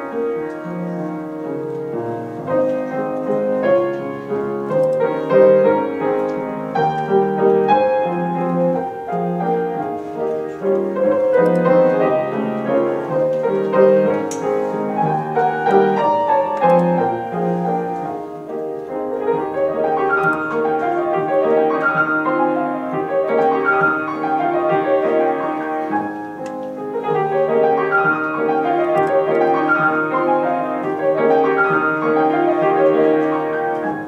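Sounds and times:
grand piano classical piece: 0:00.0 - 0:34.0.

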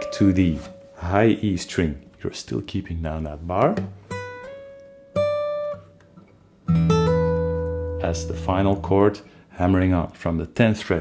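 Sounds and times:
fingerpicked acoustic guitar: 0:03.8 - 0:09.4.

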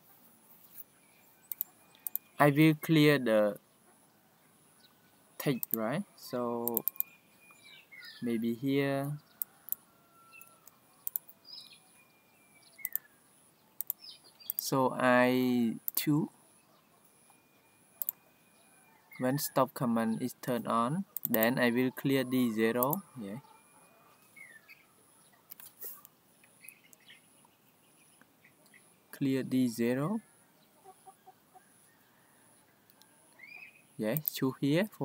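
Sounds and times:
faint high chirps: 0:00.7 - 0:03.6, 0:04.3 - 0:35.0
mouse and keyboard clicks: 0:01.5 - 0:02.3, 0:05.6 - 0:05.8, 0:06.6 - 0:07.1, 0:10.4 - 0:11.3, 0:12.8 - 0:13.0, 0:13.8 - 0:14.6, 0:21.2 - 0:21.5, 0:25.5 - 0:26.1, 0:34.2 - 0:34.4.

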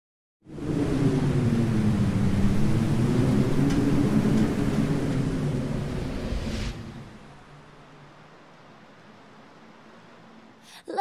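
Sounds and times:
deep rumbling drone: 0:00.4 - 0:08.3.

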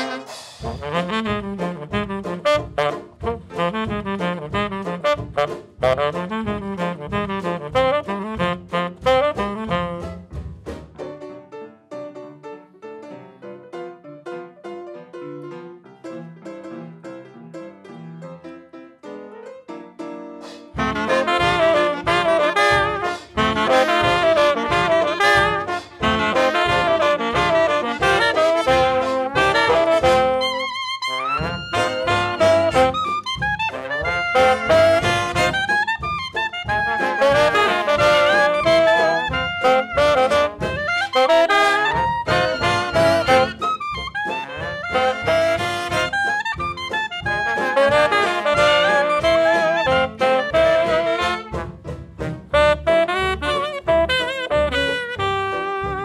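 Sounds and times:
jazz band playing: 0:00.0 - 0:11.5, 0:19.2 - 0:56.0
piano passage: 0:00.0 - 0:56.0.

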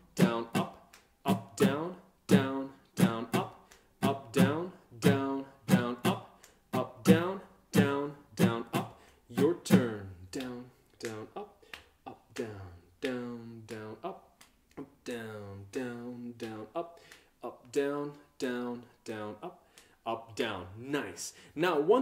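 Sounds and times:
acoustic guitar strumming: 0:01.6 - 0:06.2.

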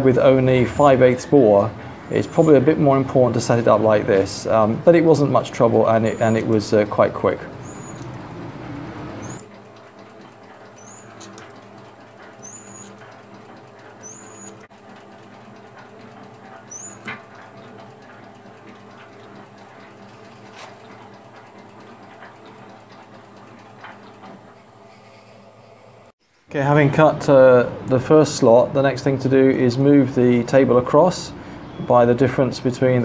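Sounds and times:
machine hum: 0:00.0 - 0:33.0
sharp ticks: 0:07.5 - 0:24.4
high rising squeak: 0:07.6 - 0:09.4, 0:10.8 - 0:11.3, 0:12.3 - 0:13.1.

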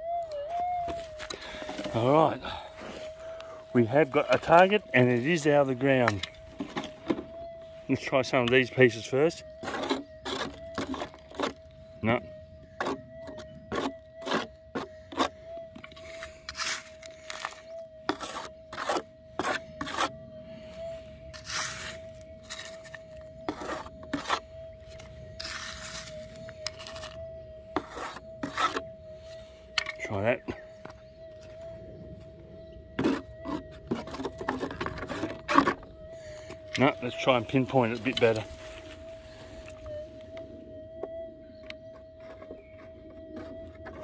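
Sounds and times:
metal detector steady hum: 0:00.0 - 0:44.0
rasping scrapes: 0:09.6 - 0:11.6, 0:12.8 - 0:20.1, 0:21.4 - 0:24.5, 0:25.4 - 0:28.9, 0:33.0 - 0:35.8.

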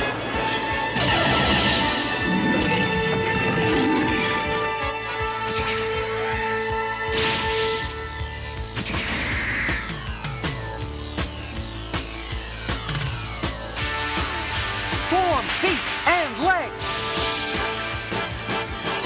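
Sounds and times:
dramatic cartoon music: 0:00.0 - 0:19.0
electronic falling zaps: 0:07.0 - 0:16.0.

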